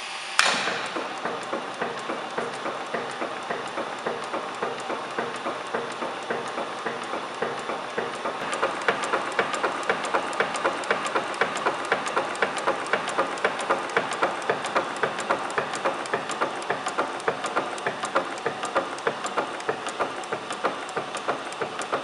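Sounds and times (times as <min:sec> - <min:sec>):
punch press clattering: 0:00.4 - 0:22.0.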